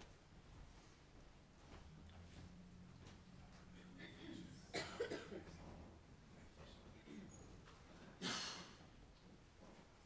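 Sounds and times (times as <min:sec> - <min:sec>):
low steady hum: 0:00.0 - 0:10.0
person coughing: 0:04.0 - 0:05.6, 0:08.2 - 0:08.8.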